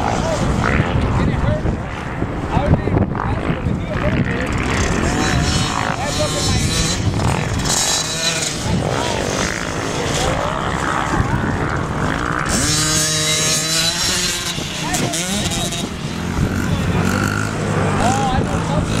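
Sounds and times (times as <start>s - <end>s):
dirt bike engines revving: 0.0s - 19.0s
voices: 0.0s - 19.0s.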